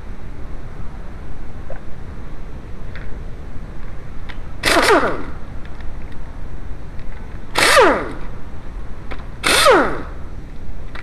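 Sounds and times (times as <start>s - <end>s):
impact wrench burst: 4.6s - 5.4s, 7.5s - 8.3s, 9.4s - 10.2s.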